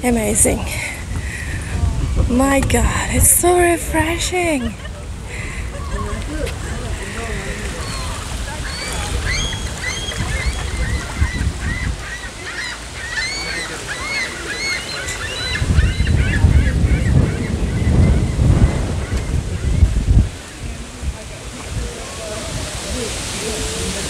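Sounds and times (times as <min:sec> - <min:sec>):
birds chirping: 0:00.0 - 0:22.0
wind buffeting microphone: 0:00.0 - 0:24.0.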